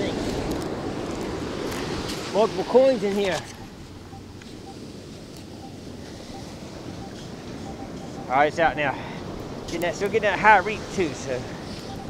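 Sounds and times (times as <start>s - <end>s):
surf washing: 0.0s - 12.0s.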